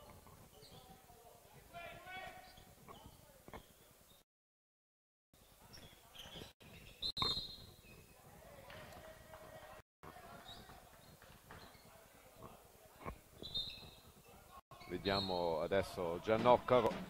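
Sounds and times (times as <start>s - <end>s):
shoe squeaks: 0.0s - 1.1s, 1.8s - 4.2s, 5.6s - 9.1s, 10.3s - 15.7s
players calling: 8.5s - 17.0s.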